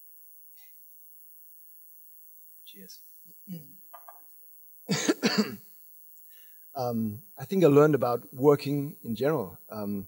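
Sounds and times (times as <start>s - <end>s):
man coughing into a microphone: 4.9s - 5.7s.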